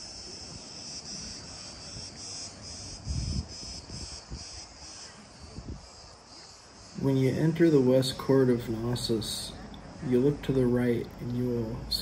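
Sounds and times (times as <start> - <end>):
cicadas chirring: 0.0 - 12.0.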